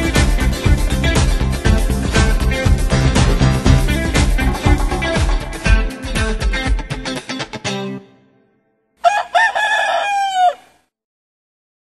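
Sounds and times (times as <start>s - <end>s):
rooster crowing: 9.0s - 10.8s.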